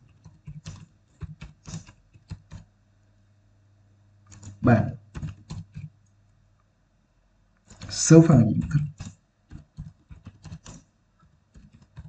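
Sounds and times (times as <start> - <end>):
computer keyboard typing: 0.0 - 2.7, 4.3 - 6.0, 7.6 - 12.0.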